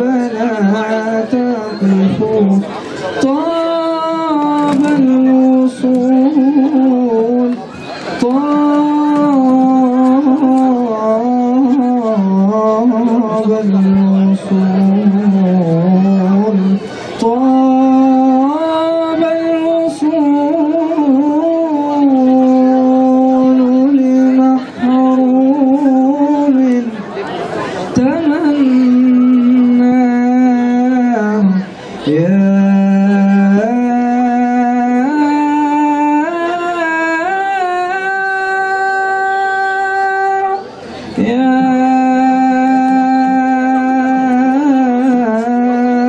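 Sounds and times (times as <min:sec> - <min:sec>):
man chanting into microphone: 0:00.0 - 0:07.6, 0:08.2 - 0:27.0, 0:28.0 - 0:46.0
man singing unaccompanied: 0:00.0 - 0:46.0.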